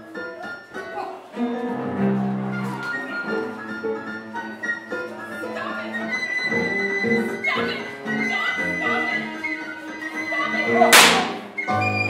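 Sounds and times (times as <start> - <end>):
piano flute and cello ensemble: 1.4 - 12.0.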